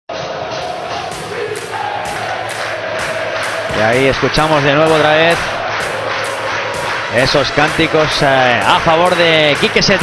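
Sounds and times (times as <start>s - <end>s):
stadium crowd chanting: 0.1s - 10.0s.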